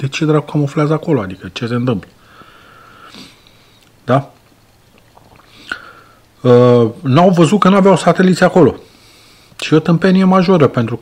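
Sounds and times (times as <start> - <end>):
man breathing through nose: 2.2 - 3.9, 5.4 - 6.3, 8.9 - 9.6
short sniff: 2.9 - 3.7.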